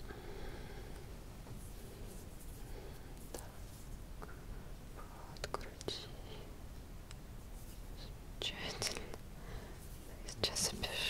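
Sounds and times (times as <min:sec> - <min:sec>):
woman whispering: 0:05.1 - 0:06.5, 0:08.0 - 0:09.2, 0:10.0 - 0:11.0.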